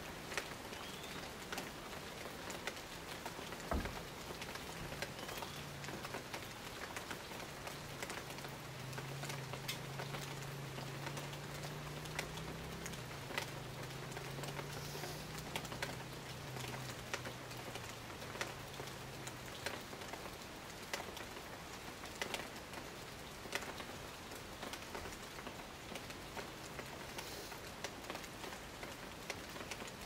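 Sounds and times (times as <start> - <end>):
close raindrops striking: 0.0 - 30.0
rain pattering on foliage: 0.0 - 30.0.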